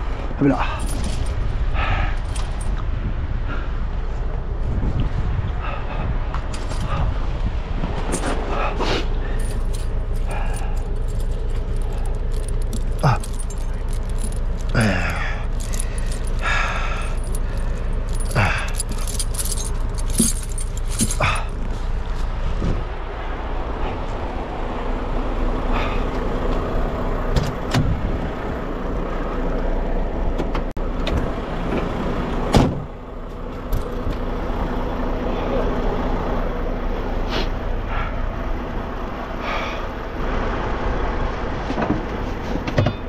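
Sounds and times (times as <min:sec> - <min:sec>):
metal tire chains clinking: 0:00.4 - 0:02.8, 0:08.0 - 0:22.4, 0:25.7 - 0:26.1, 0:33.4 - 0:34.4
diesel truck idling: 0:08.4 - 0:43.0.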